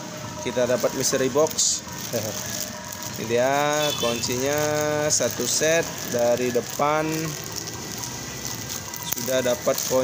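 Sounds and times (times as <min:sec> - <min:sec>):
plastic packaging crinkling: 0:00.3 - 0:10.0.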